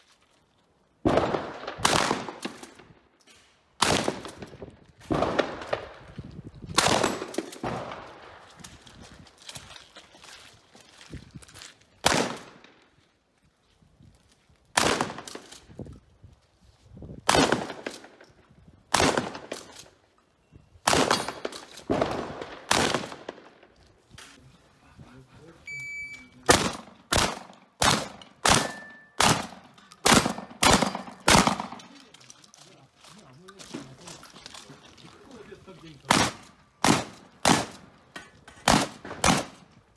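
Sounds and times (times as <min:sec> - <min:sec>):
shotgun shots: 0:01.0 - 0:03.0, 0:03.8 - 0:06.1, 0:06.7 - 0:08.5, 0:12.0 - 0:12.8, 0:14.8 - 0:15.5, 0:17.2 - 0:18.2, 0:18.9 - 0:19.8, 0:20.8 - 0:23.6, 0:26.4 - 0:32.0, 0:36.1 - 0:37.9, 0:38.6 - 0:39.7.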